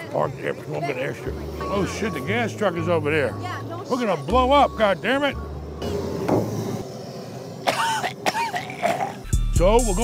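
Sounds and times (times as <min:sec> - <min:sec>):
engine running: 0:00.0 - 0:10.0
faint steady tone: 0:01.1 - 0:07.9.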